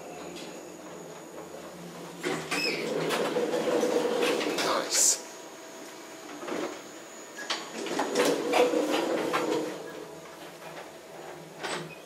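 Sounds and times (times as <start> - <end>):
elevator doors sliding closed: 0.0 - 5.1, 6.2 - 12.0.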